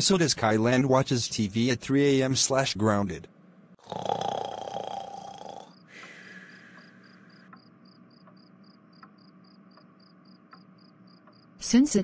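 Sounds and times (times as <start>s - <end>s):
cartoon snoring: 3.8s - 5.8s
cricket chirping: 3.9s - 11.6s.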